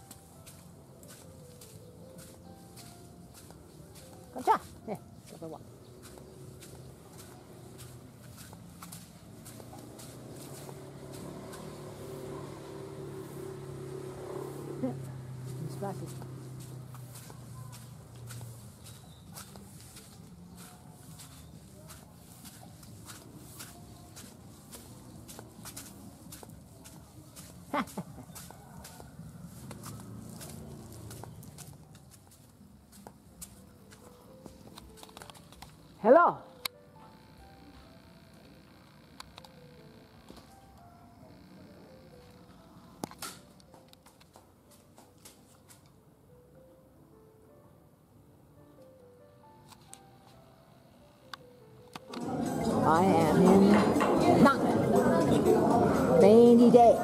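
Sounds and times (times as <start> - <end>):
faint indistinct voices: 52.0 - 57.0.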